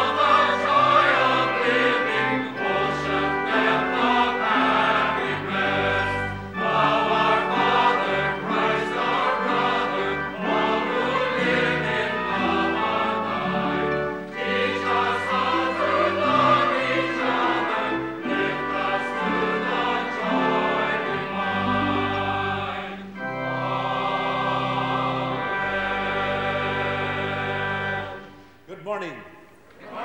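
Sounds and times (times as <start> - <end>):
mixed choir singing: 0.0 - 28.4, 29.8 - 30.0.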